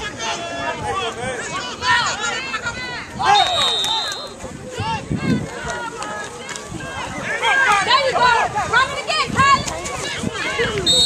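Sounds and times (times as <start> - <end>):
spectators yelling and cheering: 0.0 - 11.0
high whistle tone: 3.3 - 4.4.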